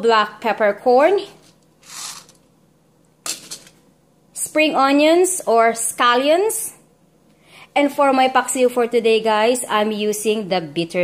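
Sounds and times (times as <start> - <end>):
peppercorns rattling in glass bowl: 1.8 - 2.4.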